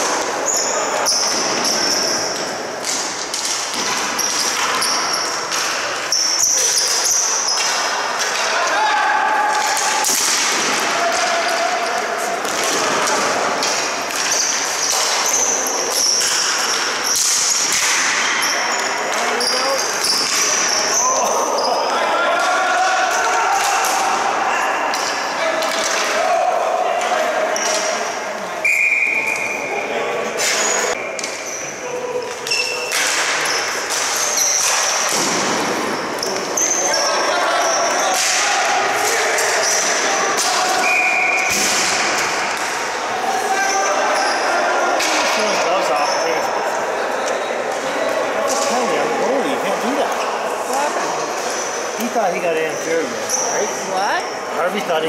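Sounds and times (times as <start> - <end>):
sharp clacks of hockey sticks and ball: 0.0 - 8.8, 9.5 - 21.3, 22.4 - 24.3, 24.9 - 26.3, 27.0 - 28.1, 30.4 - 31.6, 32.2 - 42.9, 45.0 - 46.5, 47.2 - 49.0
players shouting: 3.9 - 31.0, 31.6 - 52.2.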